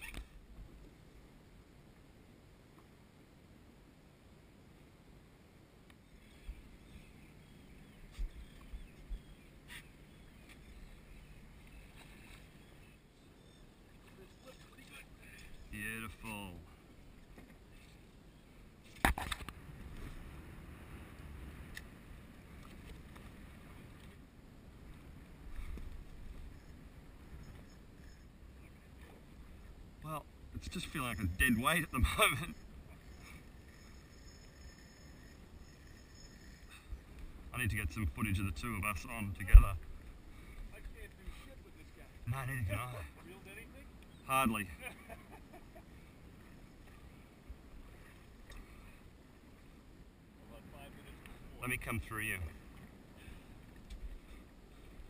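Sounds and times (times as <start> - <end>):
water noise: 0.0 - 3.0, 4.1 - 55.0
wind: 0.0 - 55.0.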